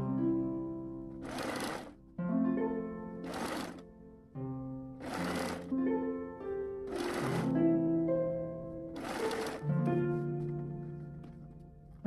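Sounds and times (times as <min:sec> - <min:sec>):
plucked-string background music: 0:00.0 - 0:12.0
sewing machine stitching: 0:01.2 - 0:02.0, 0:03.2 - 0:03.8, 0:05.0 - 0:05.7, 0:06.9 - 0:07.6, 0:09.0 - 0:09.7.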